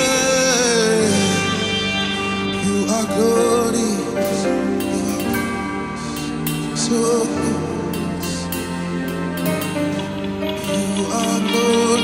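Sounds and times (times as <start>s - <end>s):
man singing into a microphone: 0.0s - 10.0s, 10.6s - 12.0s
keyboard and band backing: 0.0s - 12.0s.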